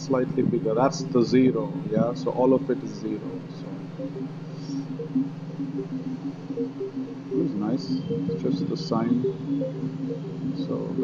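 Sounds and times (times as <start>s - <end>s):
low buzzing drone: 0.0s - 11.0s.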